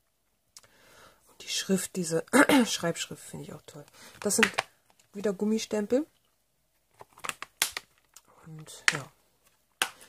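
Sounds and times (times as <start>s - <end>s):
plastic case clicks and taps: 4.2s - 4.7s.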